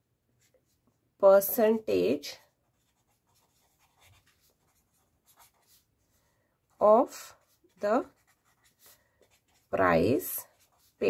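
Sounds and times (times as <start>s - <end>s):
pen scratching on paper: 2.7s - 11.0s.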